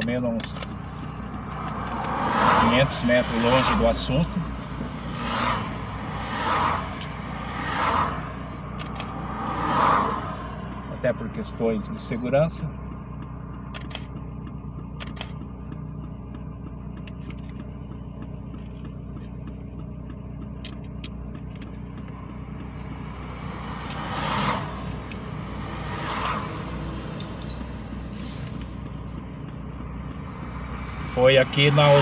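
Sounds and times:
car engine and road noise: 0.0s - 32.0s
vehicles passing with whooshes: 0.0s - 32.0s.

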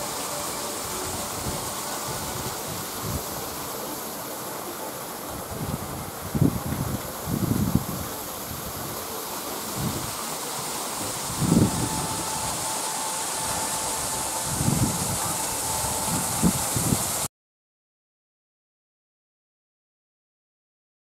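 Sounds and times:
faint steady tone: 0.0s - 6.1s, 8.1s - 17.3s
steady outdoor hiss: 0.0s - 17.3s
wind buffeting microphone: 0.9s - 3.8s, 5.3s - 10.2s, 11.0s - 12.7s, 13.4s - 17.3s.

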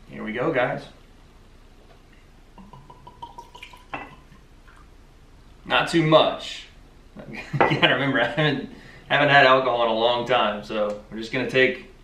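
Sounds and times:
liquid glugging into glass: 2.6s - 4.9s.

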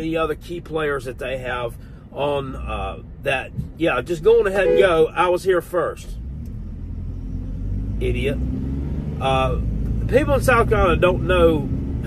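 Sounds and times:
truck engine rumble: 0.0s - 12.0s.

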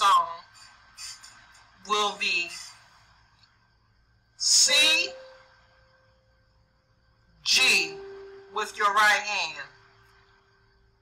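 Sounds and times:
electronic keyboard note: 4.4s - 5.5s, 7.5s - 9.7s.

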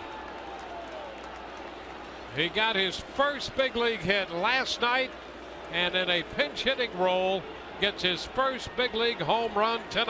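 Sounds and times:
crowd applause: 0.0s - 10.0s.

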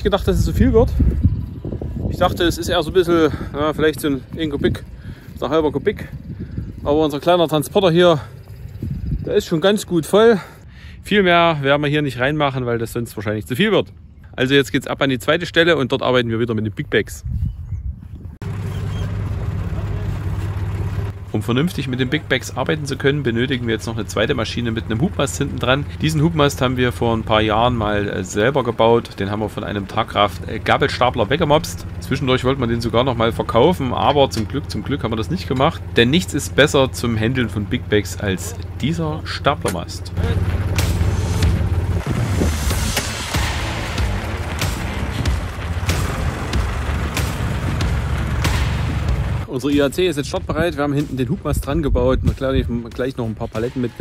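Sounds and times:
tractor engine idling: 0.0s - 11.4s, 18.4s - 51.7s.

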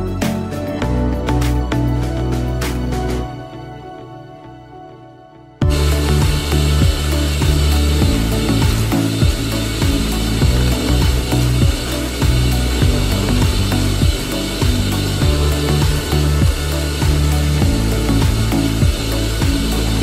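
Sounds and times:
shop vacuum running: 5.6s - 20.0s.

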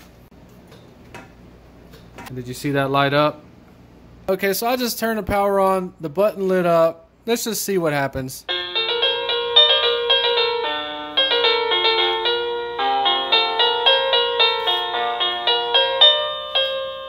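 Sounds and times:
electronic doorbell chime melody: 8.5s - 17.0s.

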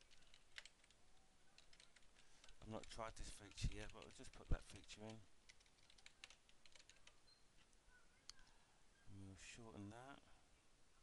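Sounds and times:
faint keyboard typing: 0.0s - 8.6s.

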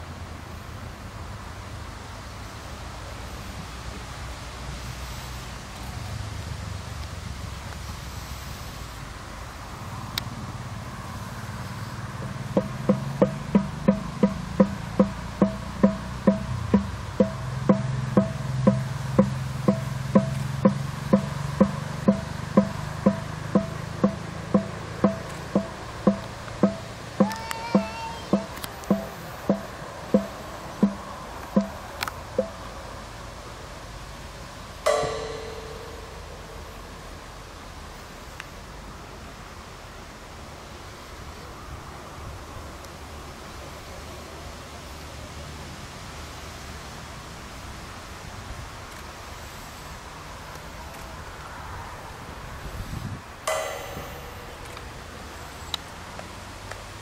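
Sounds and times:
pitched hollow knocking: 12.2s - 31.8s, 32.4s - 32.6s, 34.9s - 37.1s, 53.5s - 55.3s
ringing strike with clear tone: 12.2s - 31.8s, 32.4s - 32.7s, 34.9s - 37.5s, 53.5s - 56.1s.

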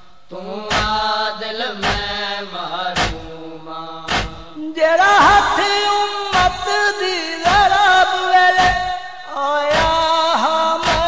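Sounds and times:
hands striking chests: 4.1s - 4.5s.

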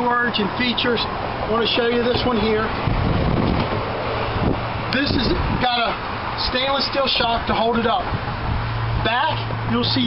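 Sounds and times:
wind buffeting microphone: 0.9s - 9.8s.

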